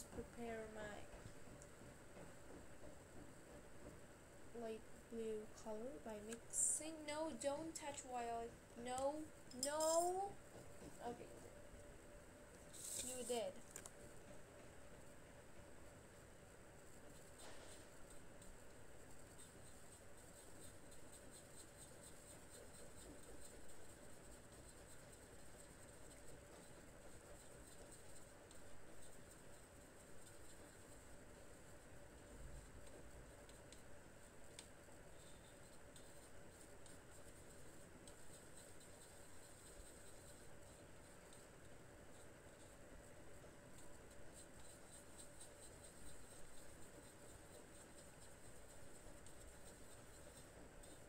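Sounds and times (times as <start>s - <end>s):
low steady hum: 0.0s - 51.0s
soft scratchy sounds: 0.0s - 51.0s.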